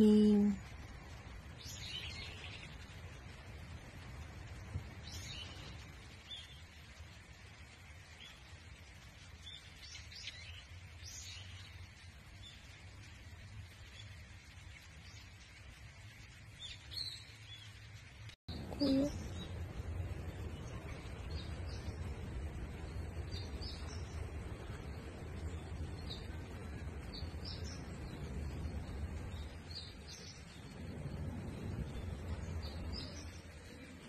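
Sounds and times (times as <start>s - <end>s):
low steady rumble: 18.0s - 34.0s.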